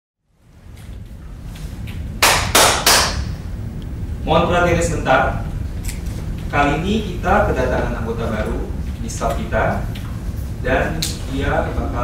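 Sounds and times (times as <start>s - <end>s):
sharp hand claps: 2.2s - 3.3s.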